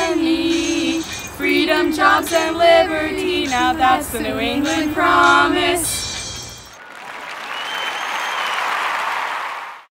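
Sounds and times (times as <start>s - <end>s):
applause: 6.8s - 9.9s.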